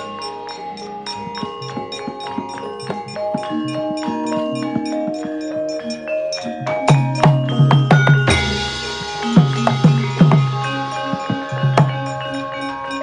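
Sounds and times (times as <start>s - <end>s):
gamelan metallophones ringing: 0.0s - 13.0s.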